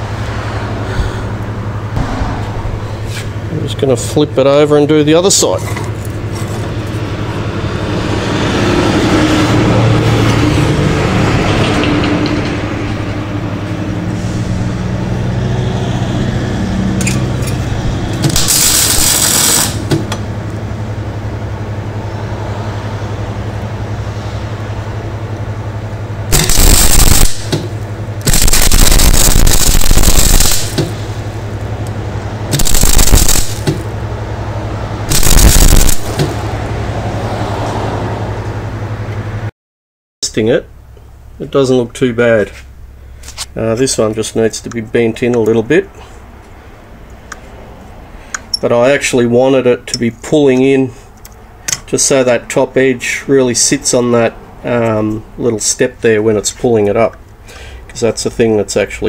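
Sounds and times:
steady low hum: 0:00.0 - 0:37.4
welding arc crackling: 0:17.0 - 0:20.2, 0:26.3 - 0:34.0, 0:35.0 - 0:36.7.

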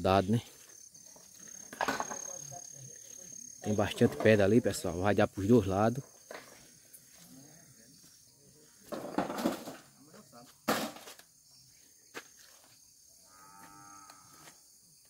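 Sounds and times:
cow mooing: 0:13.3 - 0:14.4.

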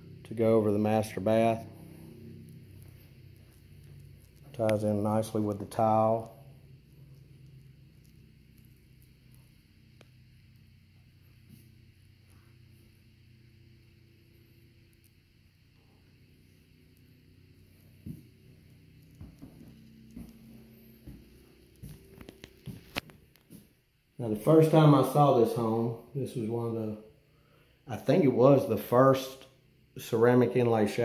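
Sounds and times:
steady low hum: 0:00.0 - 0:31.0
soft footsteps on floor: 0:17.8 - 0:23.8.

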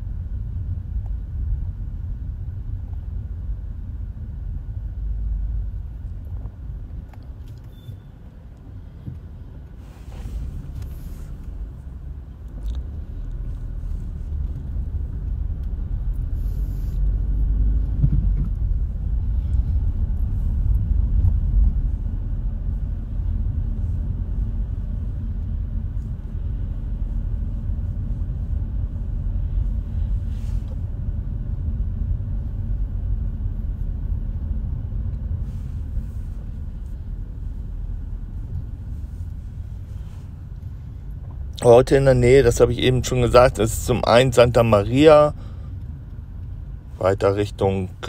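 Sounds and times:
car road and engine rumble: 0:00.0 - 0:48.0.

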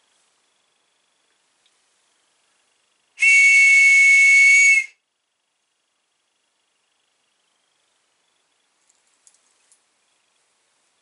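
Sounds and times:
whistle blast: 0:03.2 - 0:05.0.

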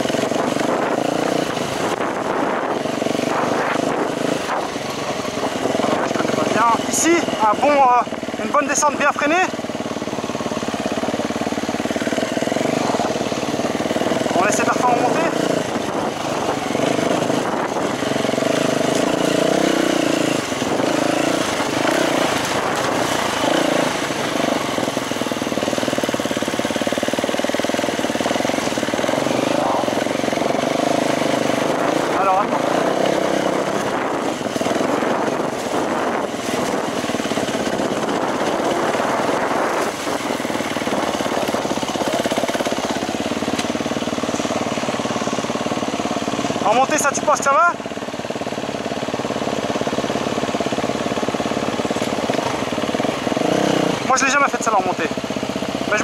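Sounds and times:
wind noise on microphone: 0:00.0 - 0:07.0, 0:15.1 - 0:25.0, 0:31.4 - 0:42.8
dirt bike engine revving: 0:00.0 - 0:56.0.

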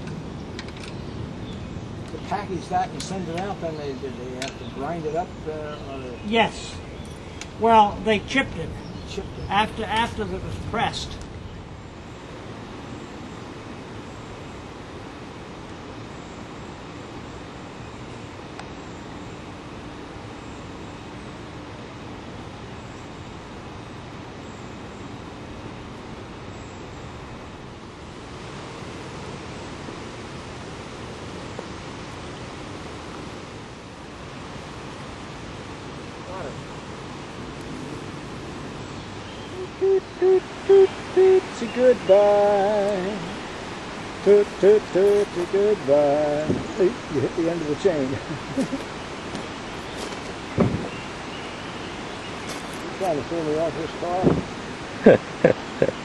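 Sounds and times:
outdoor rushing hiss: 0:00.0 - 0:56.0.

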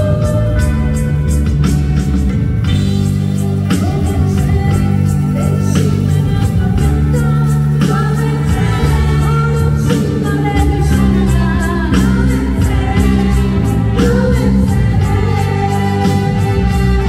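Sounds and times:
low bass notes: 0:00.0 - 0:17.0
person singing: 0:03.4 - 0:17.0
electronic drum beat: 0:07.7 - 0:11.2.

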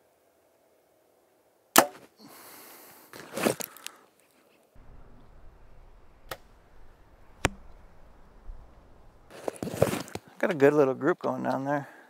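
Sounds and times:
bow string snap: 0:04.8 - 0:09.3
knocks and rustling: 0:04.8 - 0:10.1.

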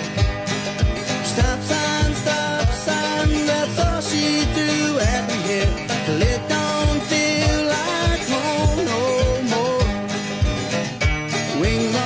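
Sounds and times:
electric guitars: 0:00.0 - 0:12.0.

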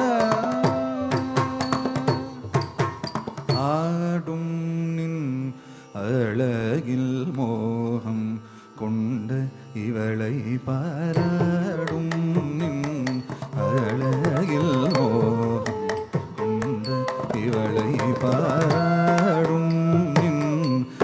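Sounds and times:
person singing ornamented notes: 0:00.0 - 0:02.8, 0:03.4 - 0:21.0.

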